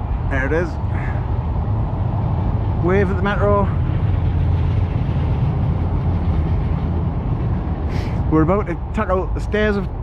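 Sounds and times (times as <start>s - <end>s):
train low rumble: 0.0s - 10.0s.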